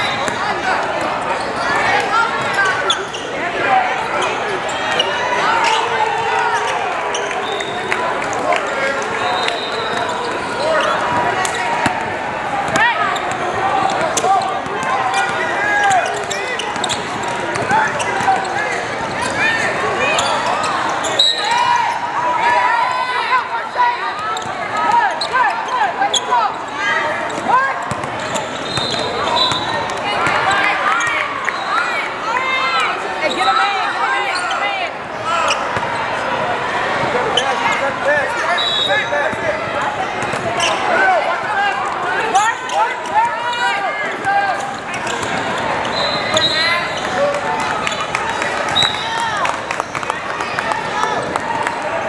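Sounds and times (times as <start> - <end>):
sneakers squeaking: 0.0 - 22.1, 24.2 - 32.0, 33.2 - 36.4, 37.0 - 41.1, 42.4 - 51.8
people talking and calling out: 0.0 - 52.0
basketball bouncing: 27.9 - 28.2.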